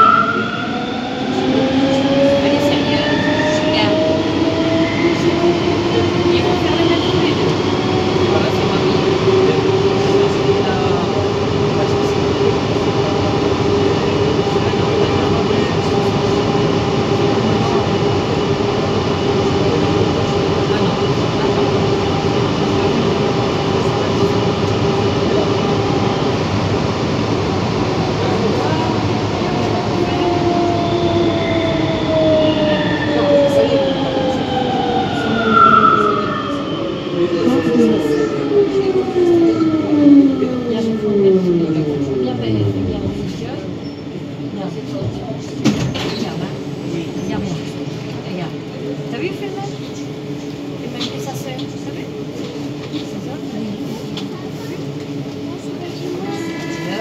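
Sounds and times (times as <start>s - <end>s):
train rolling rumble: 0.0s - 57.0s.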